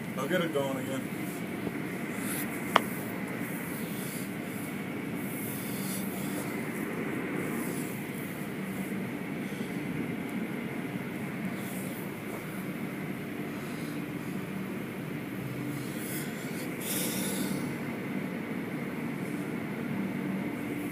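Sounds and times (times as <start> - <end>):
machinery hum: 0.0 - 20.9.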